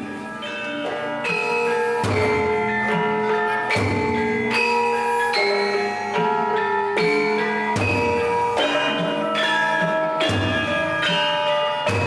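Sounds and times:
gamelan playing: 0.0s - 12.0s.

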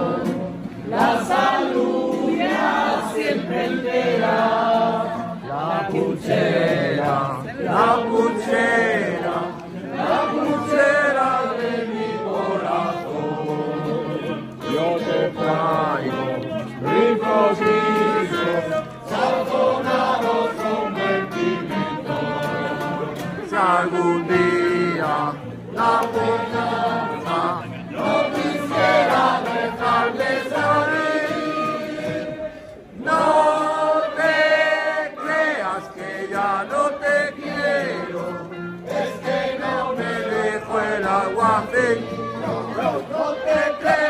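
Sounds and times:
acoustic guitar strumming: 0.0s - 44.0s
group singing in unison: 0.0s - 44.0s.

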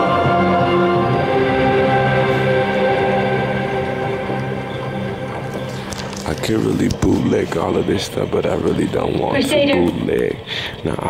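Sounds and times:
film soundtrack with dark chords: 0.0s - 10.9s.

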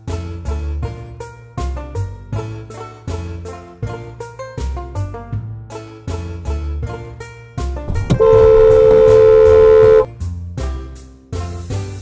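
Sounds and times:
car horn blast: 7.9s - 10.1s.

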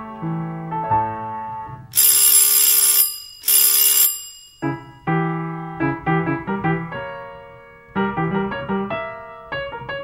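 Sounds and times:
piano accompaniment: 0.0s - 1.9s, 4.6s - 10.0s
electric bell ringing: 2.0s - 5.2s.

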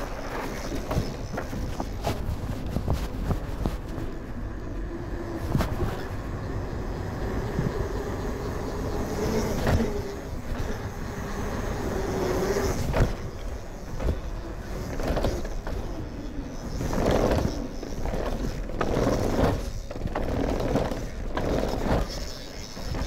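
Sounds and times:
tyre and wind rush: 0.0s - 23.0s
wavering hum: 0.0s - 23.0s
bike knocking over bumps: 16.6s - 23.0s.

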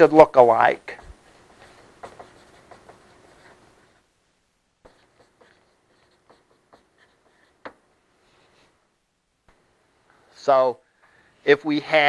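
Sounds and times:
chalk scratching on a board: 1.4s - 4.0s, 4.9s - 8.7s.

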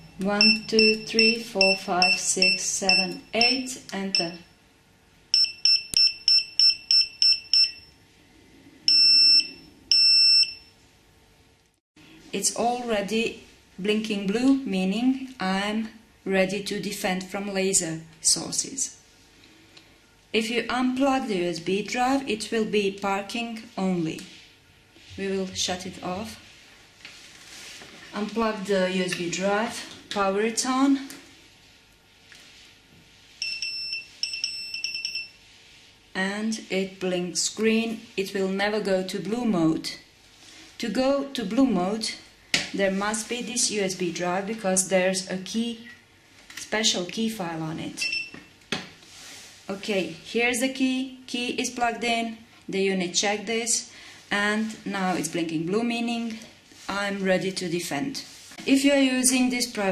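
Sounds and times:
electronic beeper beeps: 0.0s - 4.4s.

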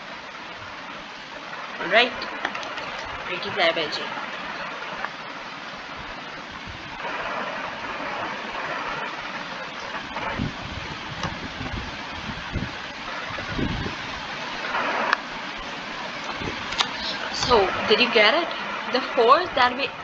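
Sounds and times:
steady background noise: 0.0s - 20.0s.

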